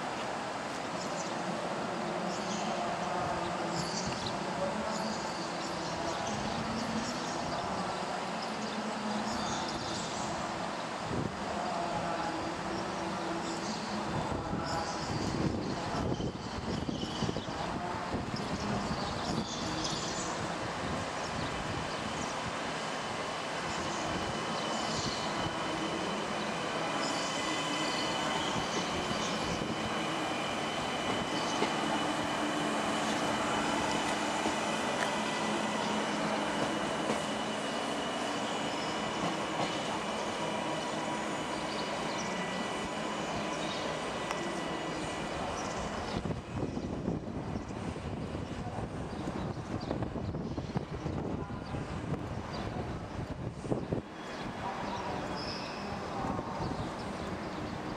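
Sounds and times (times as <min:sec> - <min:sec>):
electric train passing: 0:00.0 - 0:57.9.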